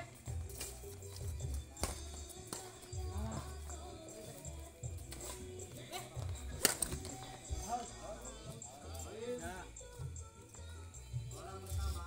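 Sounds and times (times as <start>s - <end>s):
background music: 0.0s - 12.0s
voices: 0.9s - 12.0s
racket striking shuttlecock: 1.8s - 2.8s, 6.6s - 7.2s.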